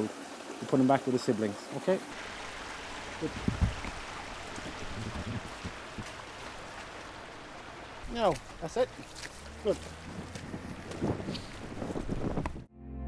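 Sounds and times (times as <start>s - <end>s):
fast-flowing river rushing: 0.0s - 12.4s.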